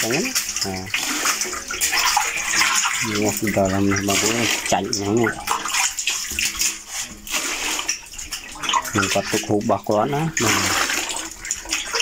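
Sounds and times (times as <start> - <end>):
fish thrashing in water: 0.0 - 12.0
water splashing: 0.0 - 12.0.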